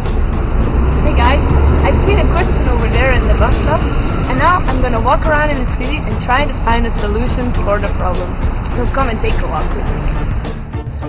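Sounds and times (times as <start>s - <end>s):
bus engine rumbling: 0.0s - 11.0s
people's voices: 1.0s - 10.2s.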